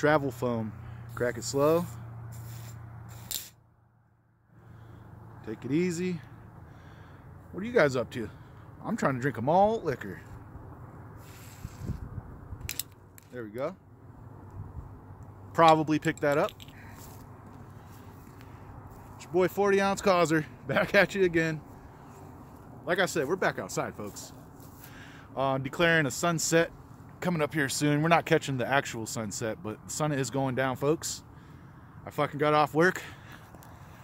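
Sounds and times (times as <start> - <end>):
steady low rumble: 0.0 - 24.7.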